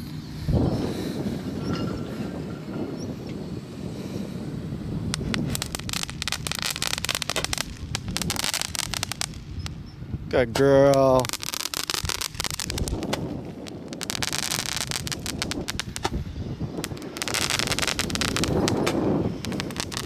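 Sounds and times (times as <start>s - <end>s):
wind on microphone: 0.0s - 20.0s
firework crackling pops: 5.0s - 20.0s.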